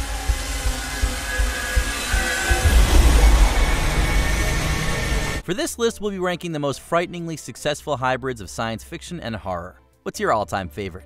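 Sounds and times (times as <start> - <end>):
deep cinematic rumble: 0.0 - 5.4
low pulses: 0.0 - 5.4.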